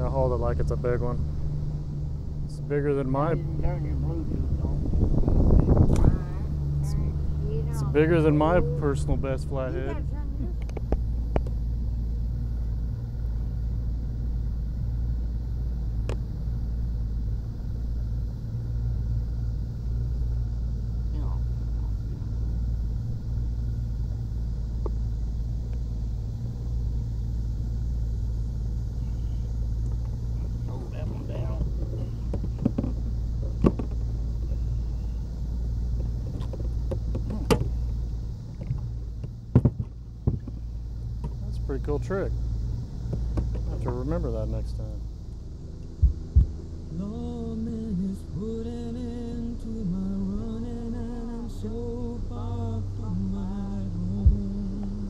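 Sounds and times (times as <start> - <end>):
boat motor droning: 0.0 - 55.0
sharp clicks and knocks: 31.6 - 34.2, 38.6 - 40.6.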